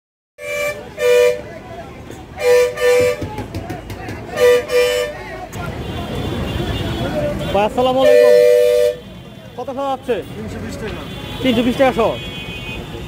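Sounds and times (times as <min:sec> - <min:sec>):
street noise with voices: 0:00.4 - 0:13.0
vehicle horn double toots: 0:02.4 - 0:03.4, 0:04.3 - 0:05.2, 0:06.3 - 0:09.2.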